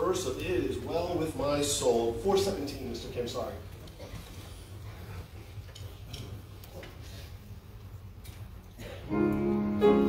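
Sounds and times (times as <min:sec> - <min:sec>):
faint clicks and rustles: 0:03.6 - 0:08.8.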